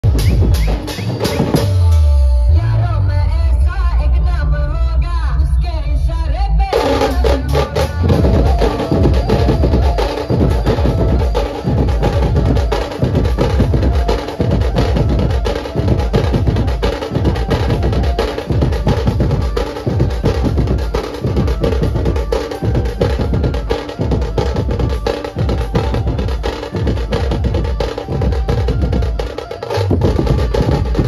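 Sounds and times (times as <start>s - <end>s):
fast heavy drumming: 0.0s - 2.2s, 6.6s - 31.0s
short tune: 6.8s - 31.0s.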